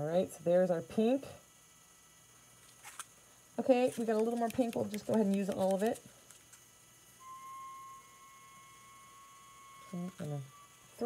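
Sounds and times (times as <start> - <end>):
faint thin steady whine: 0.0 - 11.0.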